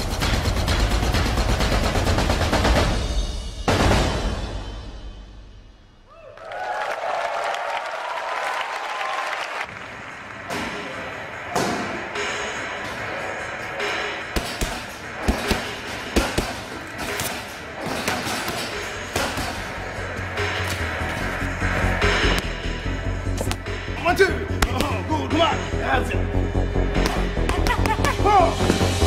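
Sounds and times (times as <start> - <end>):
music: 0.0 - 6.1, 9.6 - 29.0
boxing gloves striking pads: 14.4 - 19.9.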